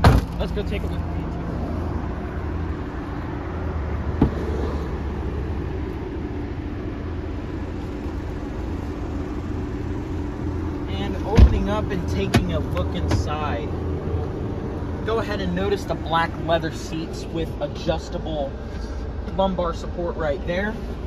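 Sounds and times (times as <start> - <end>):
vehicle engine hum: 0.0 - 21.0.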